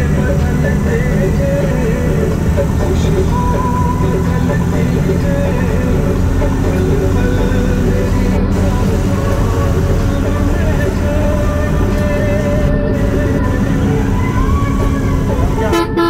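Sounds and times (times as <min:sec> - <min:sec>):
music playing: 0:00.0 - 0:16.0
vehicle engine and road rumble: 0:00.0 - 0:16.0.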